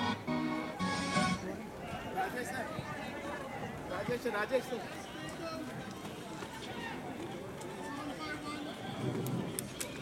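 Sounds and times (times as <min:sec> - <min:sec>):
distant people talking: 0:00.6 - 0:10.0.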